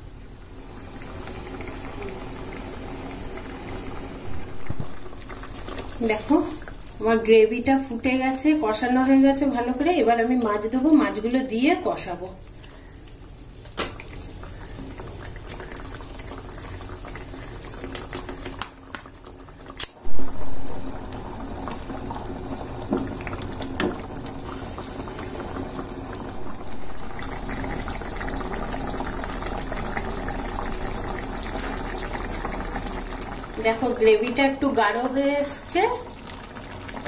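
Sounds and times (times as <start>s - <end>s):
curry simmering and bubbling: 0.4s - 37.0s
loud bubbling burst: 0.8s - 6.0s, 19.9s - 33.6s.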